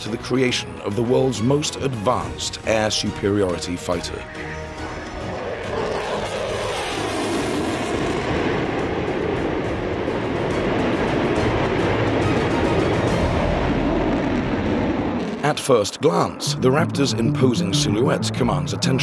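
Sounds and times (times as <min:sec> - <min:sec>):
jet flying overhead: 0:04.2 - 0:19.0.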